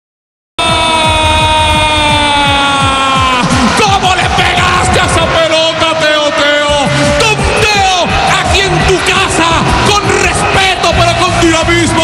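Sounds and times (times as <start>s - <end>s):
rapid drumbeats: 0.6s - 12.0s.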